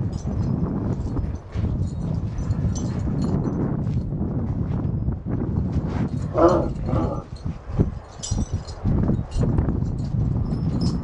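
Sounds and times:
metal dog tags jingling: 0.0 - 3.8, 6.1 - 11.0
steady low rumble: 0.0 - 11.0.

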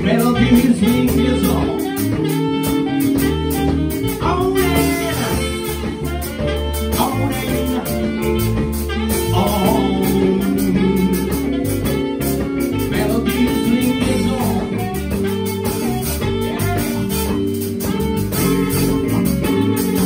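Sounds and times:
electric guitar: 0.0 - 20.0
jazz band playing: 0.0 - 20.0.

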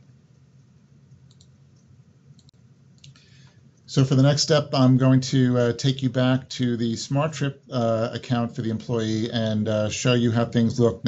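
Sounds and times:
soft hiss: 0.0 - 11.0
faint short clicks: 1.1 - 3.6
man's voice: 3.9 - 11.0.

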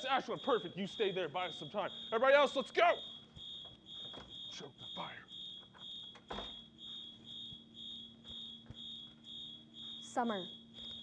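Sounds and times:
fire alarm beeping: 0.0 - 11.0.

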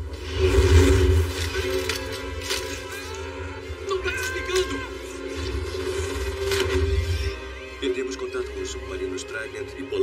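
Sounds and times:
film score: 0.0 - 10.0.

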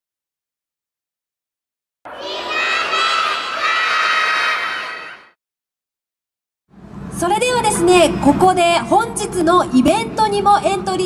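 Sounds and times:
children shouting and cheering: 2.1 - 5.4.

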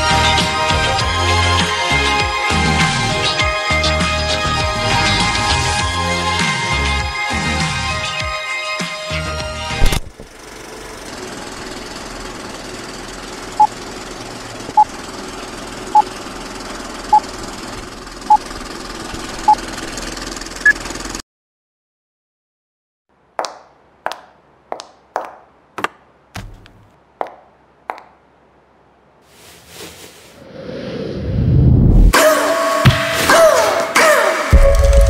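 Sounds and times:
sharp knocks: 25.2 - 28.1.

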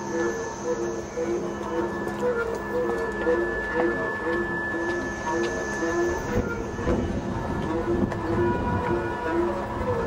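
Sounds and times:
bowed cello: 0.0 - 10.0
steady high tone: 0.0 - 10.0.

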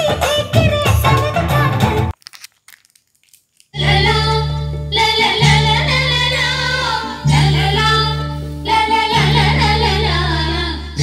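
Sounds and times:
songs with singing on speakers: 0.0 - 2.1, 3.8 - 11.0
heavy bass notes: 3.8 - 11.0.

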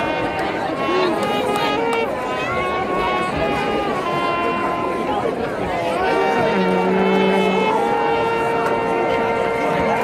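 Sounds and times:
marching band holding chord: 0.0 - 10.0.

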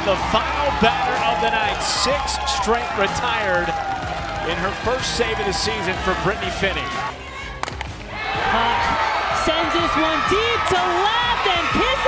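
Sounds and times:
background music: 0.0 - 12.0
crowd noise: 0.0 - 12.0
bat hitting ball: 7.6 - 8.0.

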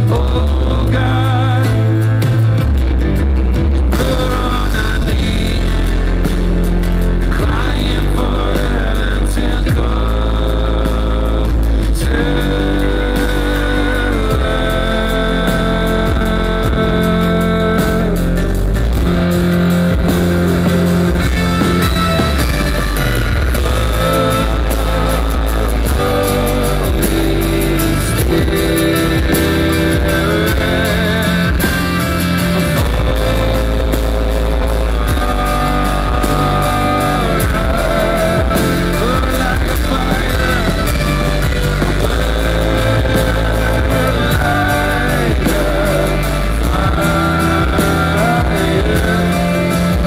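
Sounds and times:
electric guitar: 0.0 - 50.0
live band playing instrumental: 0.0 - 50.0.

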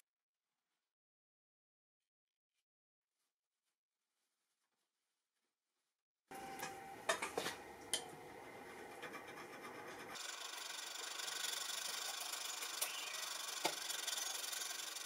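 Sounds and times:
hand file rasping on metal: 8.8 - 15.0.

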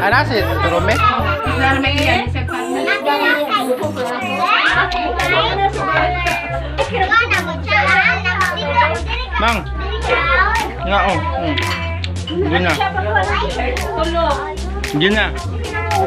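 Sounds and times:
children calling out excitedly: 0.0 - 16.0
dance music with heavy bass: 0.1 - 7.6.

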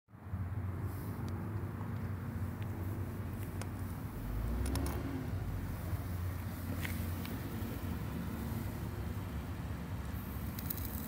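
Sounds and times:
car engine idling: 1.2 - 11.0.

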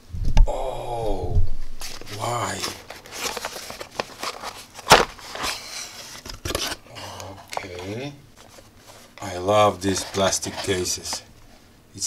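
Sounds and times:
cardboard scraping and rustling: 1.8 - 6.8, 7.6 - 11.2.

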